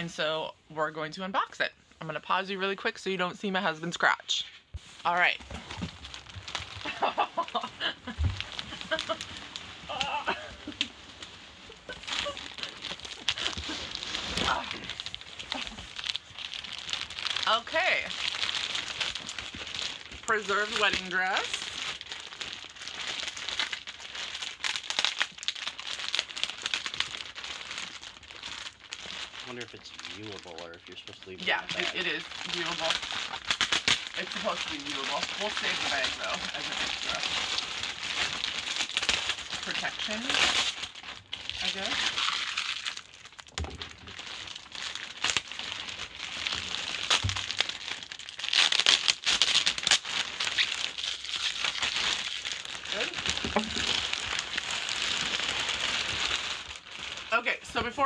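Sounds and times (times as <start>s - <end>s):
plastic bag crinkling: 3.9s - 58.0s.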